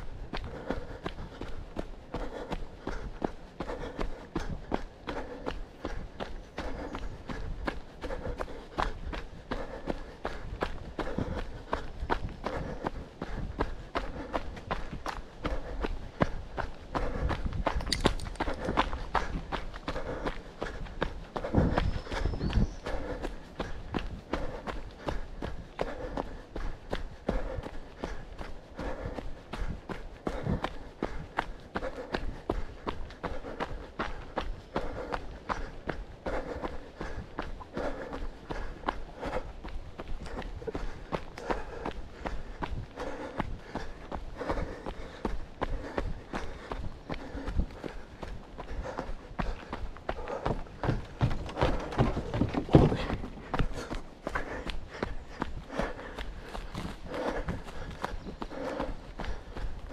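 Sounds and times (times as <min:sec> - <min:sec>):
footfalls on dirt trail: 0:00.3 - 0:59.9.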